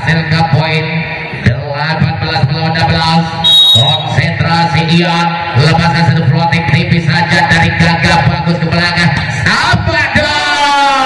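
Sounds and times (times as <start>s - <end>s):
referee's whistle blast: 3.4s - 4.2s.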